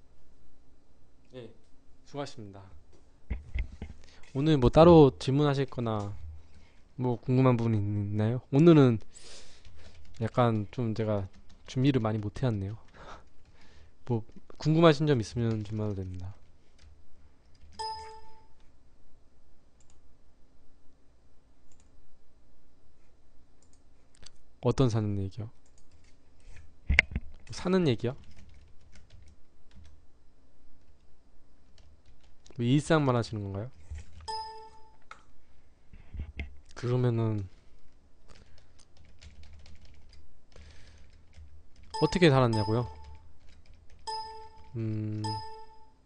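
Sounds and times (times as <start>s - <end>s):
short ringing tone: 17.8s - 18.5s, 34.3s - 35.0s, 42.0s - 43.2s, 44.1s - 46.0s
computer clicks: 19.8s - 20.0s, 38.3s - 45.8s.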